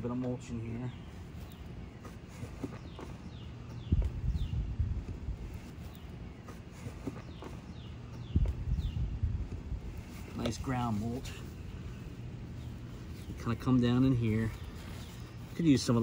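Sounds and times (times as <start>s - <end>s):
bird chirping: 0.0s - 16.0s
mulch rustling: 1.0s - 16.0s
low thuds: 2.0s - 5.7s.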